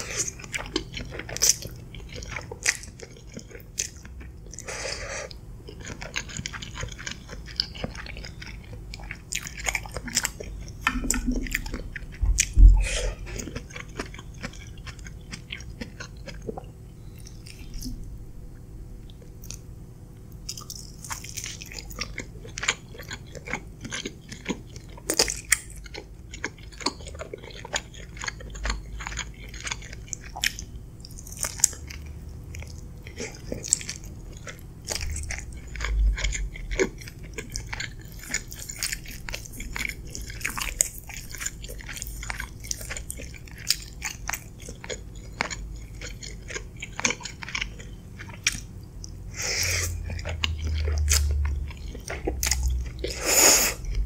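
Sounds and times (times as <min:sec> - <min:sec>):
wet chewing with mouth clicks: 0:00.0 - 0:18.1, 0:19.0 - 0:19.7, 0:20.4 - 0:54.0.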